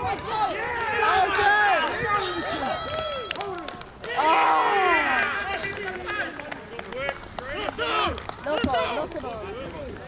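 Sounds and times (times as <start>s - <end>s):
spectators shouting excitedly: 0.0s - 3.4s, 4.0s - 6.3s.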